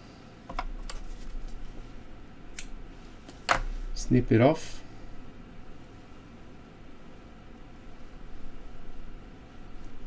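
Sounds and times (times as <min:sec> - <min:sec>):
quiet rustling: 0:00.8 - 0:02.0.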